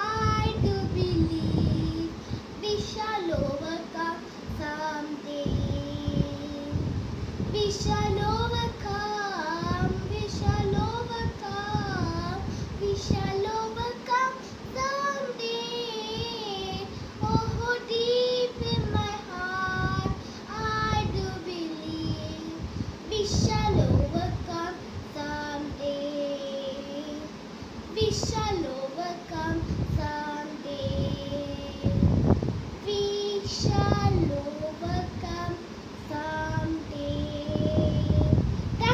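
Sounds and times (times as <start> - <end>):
boy singing: 0.0 - 38.9.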